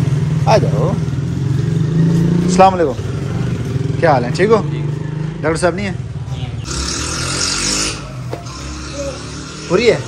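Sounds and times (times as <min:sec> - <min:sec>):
vehicle engine running: 0:00.0 - 0:10.0.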